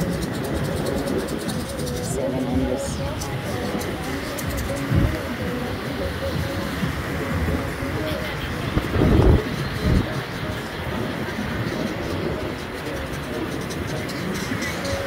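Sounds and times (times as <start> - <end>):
distant voices: 0.0 - 15.0
faint music: 0.0 - 15.0
surf washing: 0.0 - 15.0
wind noise: 0.0 - 15.0
low thumps on microphone: 4.4 - 5.5.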